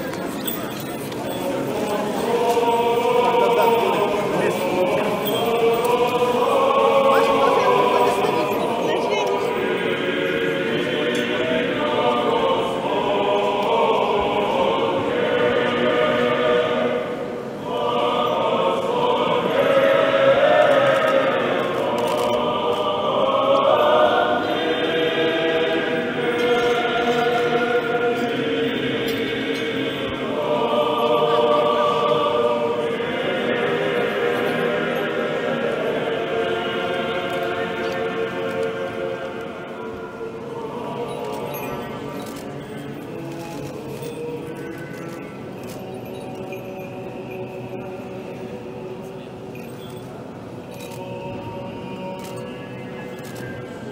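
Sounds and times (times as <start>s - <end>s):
choir chanting: 0.0s - 53.9s.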